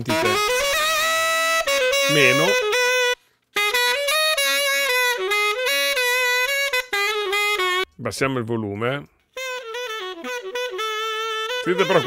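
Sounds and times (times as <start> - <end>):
distorted saxophone: 0.0 - 7.8, 9.4 - 12.0.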